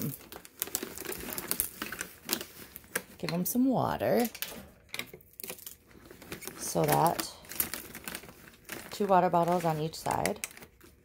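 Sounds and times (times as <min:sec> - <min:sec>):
plastic bottle crinkling: 0:00.0 - 0:11.0.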